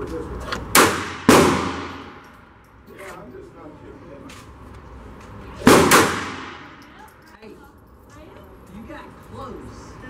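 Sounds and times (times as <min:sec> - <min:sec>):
pistol shots echoing indoors: 0:00.8 - 0:02.4, 0:05.6 - 0:06.8.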